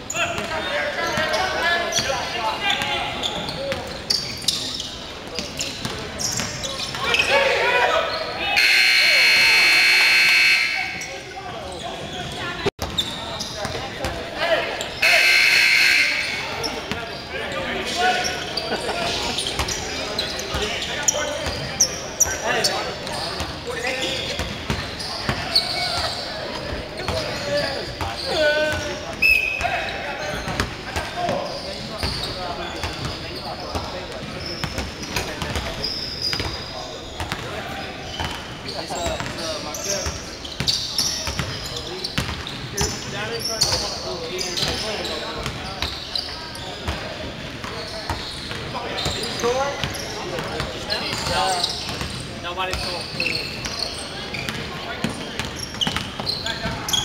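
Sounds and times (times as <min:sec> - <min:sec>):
sneaker squeaks: 0:00.0 - 0:14.2, 0:14.8 - 0:57.0
players' voices echoing: 0:00.0 - 0:57.0
scoreboard buzzer blasts: 0:08.6 - 0:11.1, 0:15.0 - 0:16.5.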